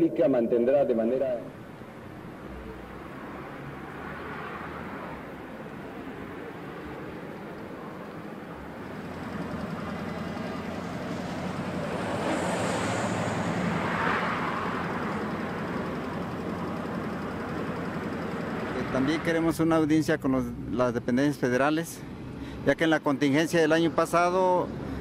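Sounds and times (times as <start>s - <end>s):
road traffic rumble: 0.0s - 25.0s.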